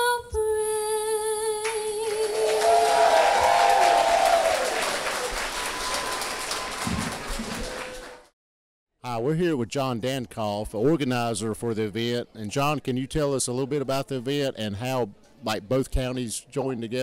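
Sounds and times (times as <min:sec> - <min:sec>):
woman singing: 0:00.0 - 0:03.0
crowd applause and cheering: 0:02.1 - 0:08.3
person whooping: 0:02.3 - 0:05.9.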